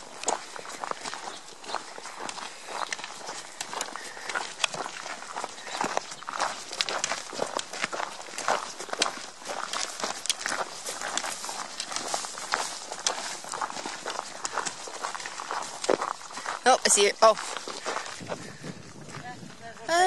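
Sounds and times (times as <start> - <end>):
footsteps on gravel: 0.0 - 20.0.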